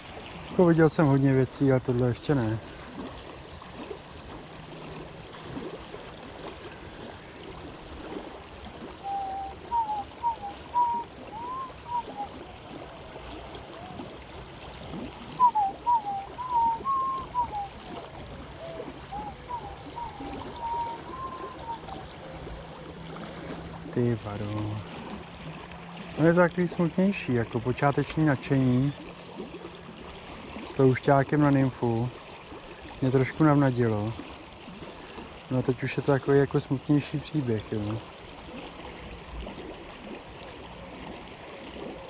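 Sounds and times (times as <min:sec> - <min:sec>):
river water rushing: 0:00.0 - 0:42.0
short sliding whistled notes: 0:09.0 - 0:12.3, 0:15.4 - 0:17.7, 0:18.6 - 0:21.9.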